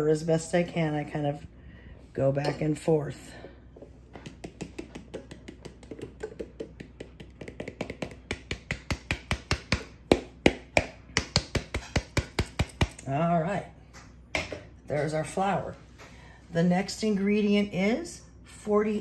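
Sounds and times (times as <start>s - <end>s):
tapping on plastic bowl: 4.2s - 13.0s.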